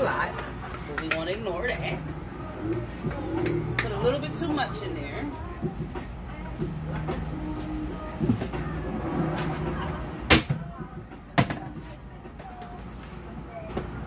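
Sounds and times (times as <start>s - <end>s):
background music: 0.0s - 14.0s.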